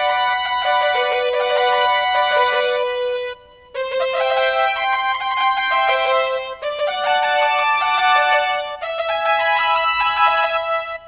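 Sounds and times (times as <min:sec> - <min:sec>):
synth keyboard melody: 0:00.0 - 0:11.0.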